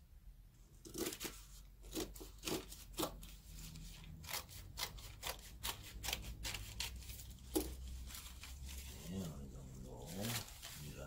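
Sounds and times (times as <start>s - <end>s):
scissors snipping paper: 0.9s - 7.8s.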